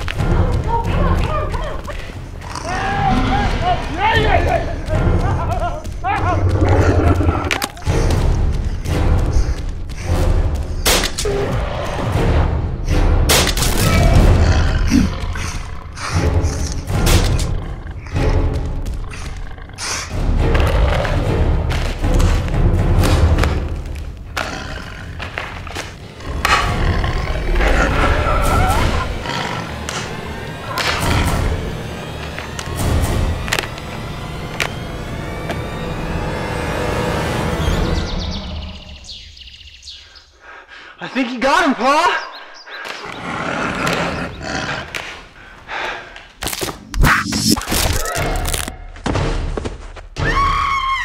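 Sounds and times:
film soundtrack music: 0:00.0 - 0:51.0.

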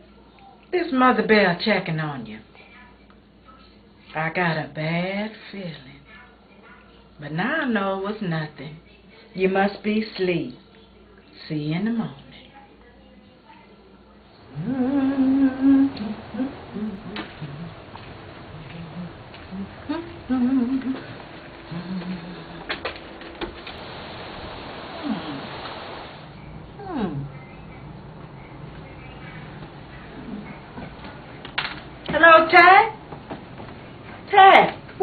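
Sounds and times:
wordless wavering vocal sound: 0:14.5 - 0:22.7, 0:26.8 - 0:27.4
woman humming: 0:14.5 - 0:22.9, 0:24.9 - 0:25.6, 0:26.7 - 0:27.6.

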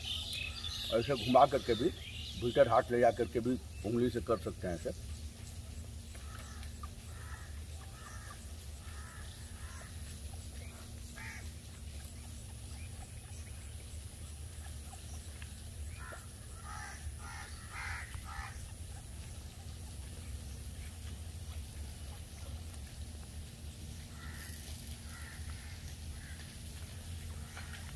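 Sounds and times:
harsh bird calls: 0:00.0 - 0:21.0, 0:24.0 - 0:27.9.

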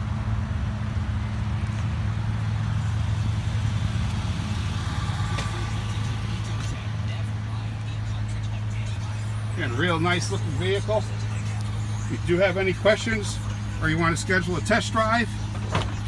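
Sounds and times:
vehicle engine idling: 0:00.0 - 0:16.0.

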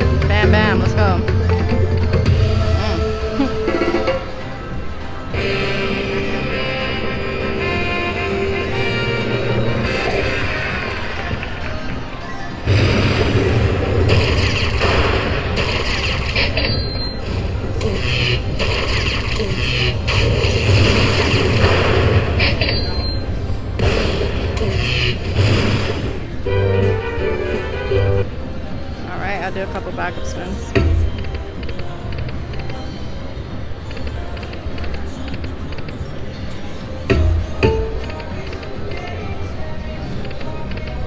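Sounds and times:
booming strikes and rumble: 0:12.6 - 0:27.8.

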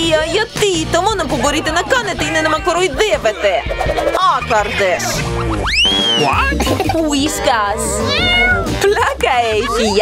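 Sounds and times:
background music: 0:00.0 - 0:10.0
wavering cat meow: 0:07.9 - 0:08.8.

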